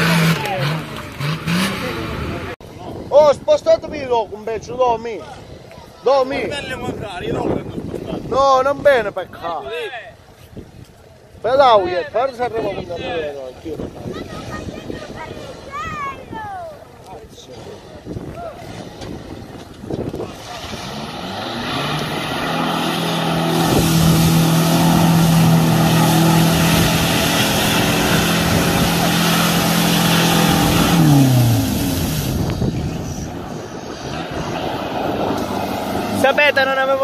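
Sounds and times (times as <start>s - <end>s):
off-road vehicle engine revving: 0.0s - 2.6s, 17.4s - 37.0s
mud and water spraying: 13.8s - 37.0s.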